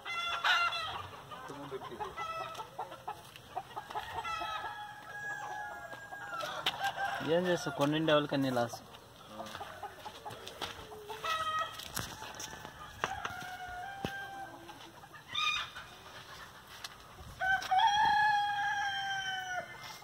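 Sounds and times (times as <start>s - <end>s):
chickens calling: 0.0s - 20.0s
rooster crowing: 3.8s - 7.9s, 11.0s - 15.8s, 17.4s - 20.0s.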